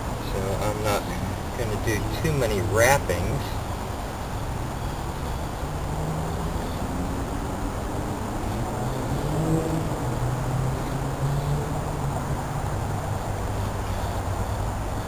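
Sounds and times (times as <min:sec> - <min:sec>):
distant engine rumbling: 0:00.0 - 0:13.8.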